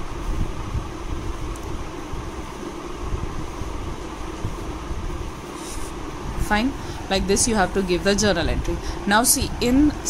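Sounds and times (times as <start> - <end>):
mechanical hum with low rumble: 0.0 - 10.0.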